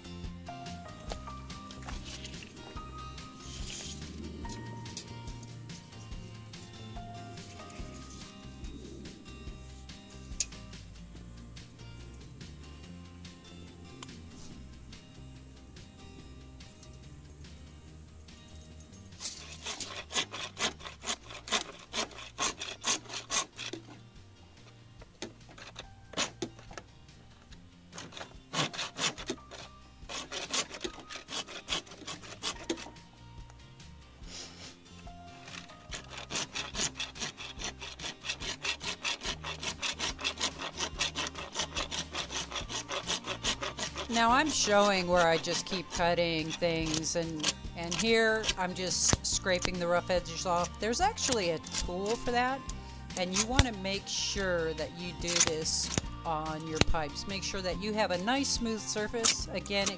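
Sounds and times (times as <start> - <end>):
hand saw cutting plastic pipe: 1.1 - 5.4, 19.2 - 24.0, 25.1 - 26.9, 27.9 - 33.1, 35.0 - 59.9.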